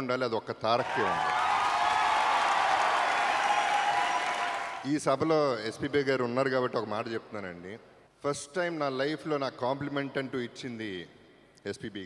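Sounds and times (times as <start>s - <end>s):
crowd applauding: 0.8s - 4.9s.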